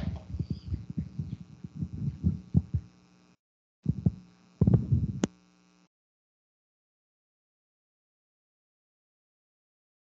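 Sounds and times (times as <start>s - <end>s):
microphone handling thumps: 0.0s - 3.0s, 3.9s - 5.3s.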